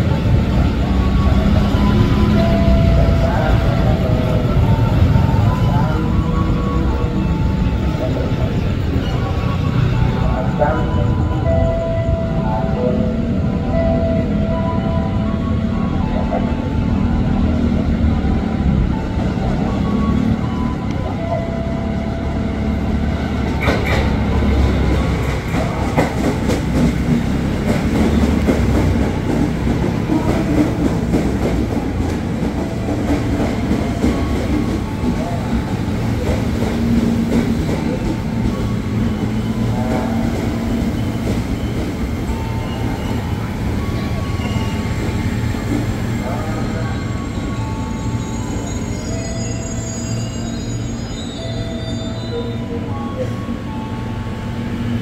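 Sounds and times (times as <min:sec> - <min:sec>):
train wheels rumbling on rails: 0:00.0 - 0:55.0
squealing wheels and brakes: 0:37.5 - 0:54.0.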